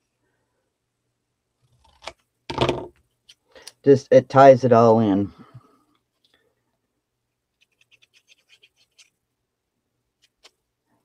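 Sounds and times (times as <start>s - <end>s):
scissors cutting paper: 7.6s - 9.1s.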